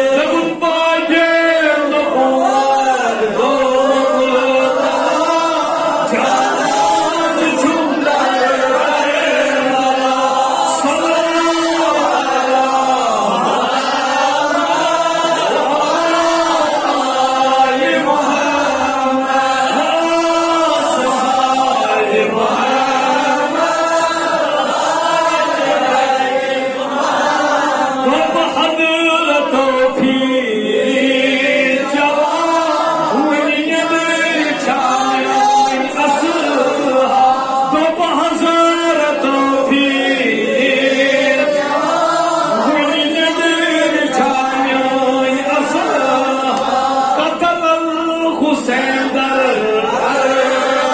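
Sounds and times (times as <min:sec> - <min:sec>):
man chanting: 0:00.0 - 0:23.6, 0:27.8 - 0:41.6, 0:42.4 - 0:50.9.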